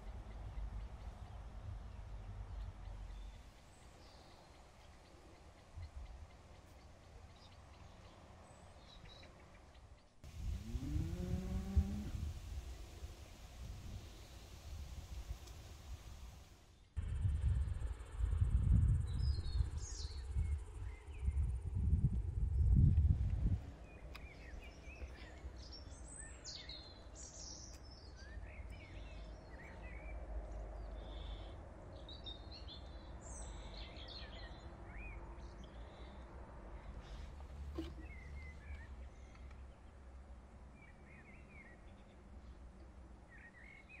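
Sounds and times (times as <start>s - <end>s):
small birds chirping: 0.0s - 17.0s, 23.6s - 44.0s.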